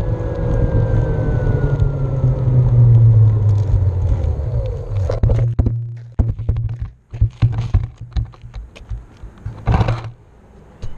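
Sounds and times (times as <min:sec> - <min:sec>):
low hum: 0:00.0 - 0:08.2
hand handling a board: 0:05.0 - 0:10.2.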